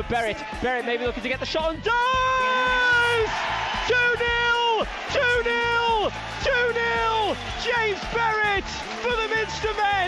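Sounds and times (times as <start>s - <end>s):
crowd cheering: 0.0s - 1.4s, 2.0s - 10.0s
man shouting: 1.7s - 10.0s.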